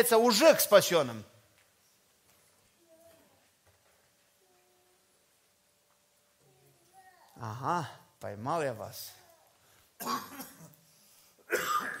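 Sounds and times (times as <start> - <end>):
person coughing: 10.0 - 10.8, 11.5 - 12.0.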